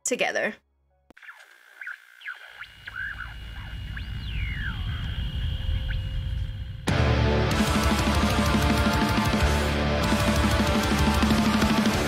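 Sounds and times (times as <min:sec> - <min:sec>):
scattered chirps: 0:01.1 - 0:06.9
low drone: 0:02.6 - 0:12.0
heavy metal band with distorted guitars: 0:06.9 - 0:12.0.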